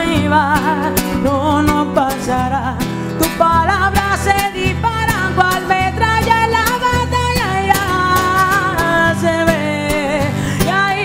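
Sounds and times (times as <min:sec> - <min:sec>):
strummed acoustic guitar: 0:00.0 - 0:11.0
woman singing with vibrato: 0:00.0 - 0:11.0.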